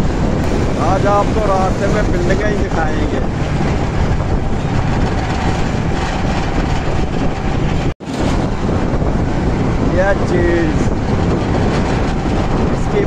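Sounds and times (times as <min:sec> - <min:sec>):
road traffic noise: 0:00.0 - 0:13.0
wind on microphone: 0:00.0 - 0:13.0.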